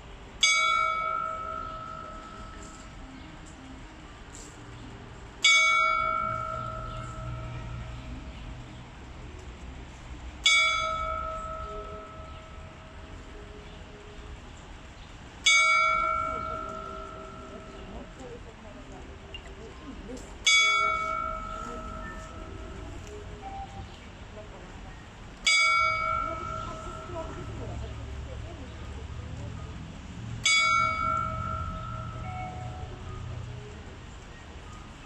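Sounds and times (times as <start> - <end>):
clock tower bell striking: 0.4 - 3.1, 5.4 - 8.3, 10.4 - 13.4, 15.4 - 18.6, 20.4 - 23.8, 25.4 - 29.0, 29.6 - 33.9.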